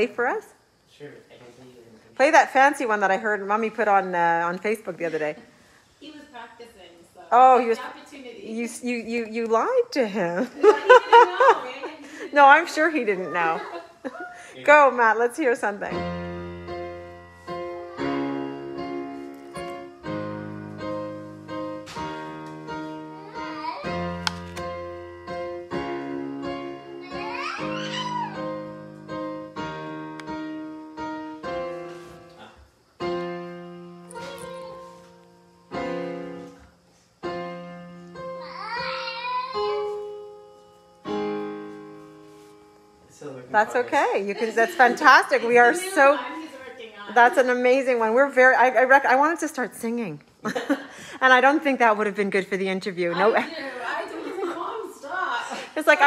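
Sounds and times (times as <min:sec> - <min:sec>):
slow digital piano piece: 0:15.9 - 0:43.3.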